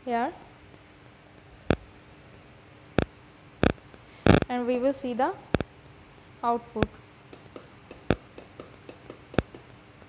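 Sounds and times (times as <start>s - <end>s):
switch clicks: 6.8s - 9.7s.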